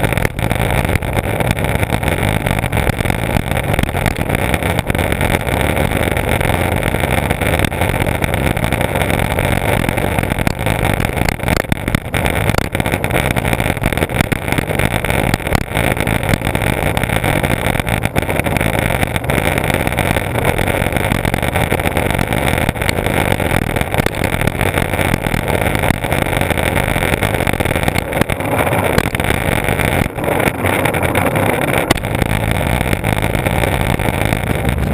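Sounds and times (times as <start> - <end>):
faint clicks over bumps: 0.0 - 34.9
skateboard wheels rolling on asphalt: 0.0 - 34.9.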